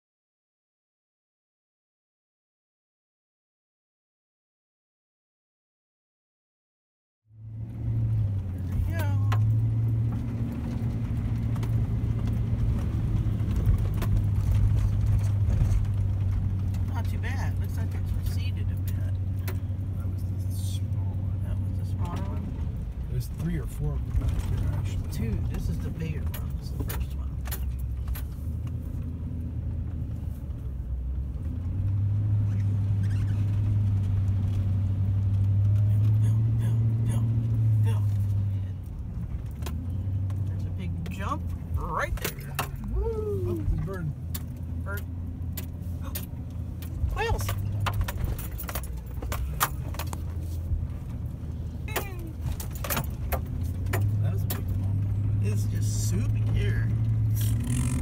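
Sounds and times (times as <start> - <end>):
truck engine running: 7.4 - 58.0.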